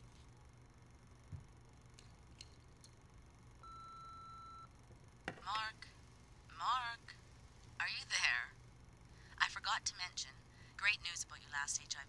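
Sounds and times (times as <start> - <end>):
answering machine beep: 3.6 - 4.7.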